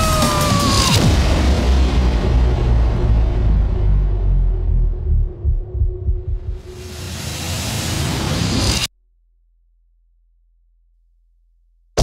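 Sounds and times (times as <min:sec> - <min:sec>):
deep low thumps: 0:02.3 - 0:06.8.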